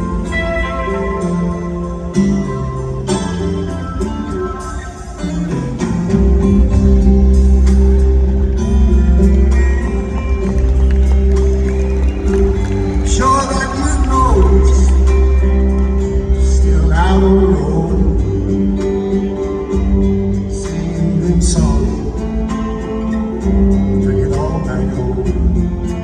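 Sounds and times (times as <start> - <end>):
live band playing: 0.0 - 26.0
deep bass: 6.1 - 22.8.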